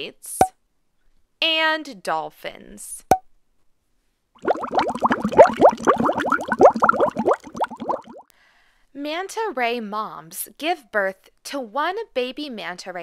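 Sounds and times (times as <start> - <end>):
cartoon bubbling plops: 4.4 - 8.3.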